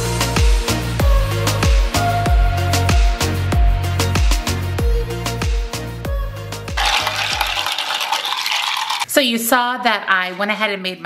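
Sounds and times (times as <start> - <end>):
music with a deep beat: 0.0 - 6.4
ice clinking in a glass jar: 6.8 - 9.1
spoon stirring: 6.8 - 9.1.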